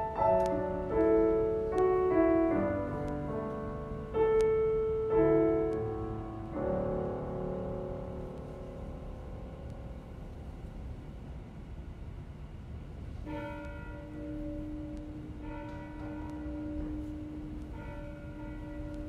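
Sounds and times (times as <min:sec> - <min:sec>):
low steady rumble: 0:00.0 - 0:19.0
church bell tolling: 0:13.2 - 0:19.0.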